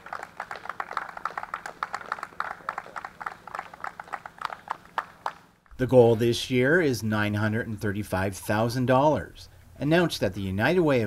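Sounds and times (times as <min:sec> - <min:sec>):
crowd applauding: 0:00.0 - 0:05.6.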